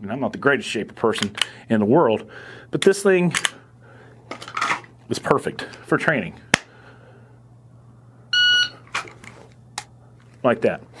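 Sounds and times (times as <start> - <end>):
shot timer beep: 8.3 - 8.8.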